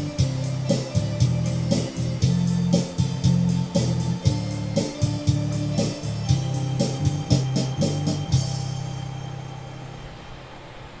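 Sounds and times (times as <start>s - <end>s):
held low music note: 0.0s - 10.9s
faint hiss: 0.0s - 11.0s.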